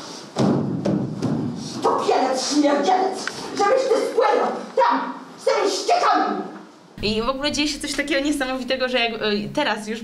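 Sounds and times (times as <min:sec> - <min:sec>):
woman speaking in rasping voice: 0:07.0 - 0:10.0.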